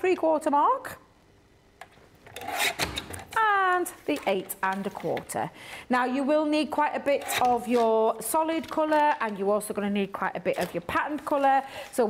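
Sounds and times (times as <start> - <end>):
paper trimmer blade scraping: 2.3 - 3.2, 7.0 - 8.0.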